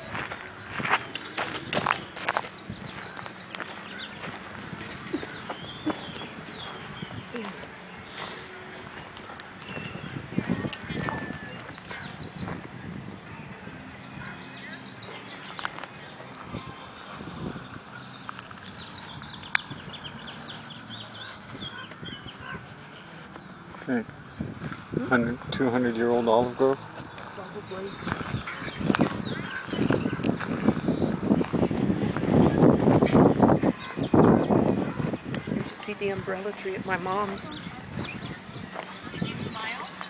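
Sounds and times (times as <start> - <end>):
footsteps with clicks and crackles: 0.0 - 12.8, 14.2 - 24.9, 26.6 - 40.0
small birds chirping: 0.0 - 40.0.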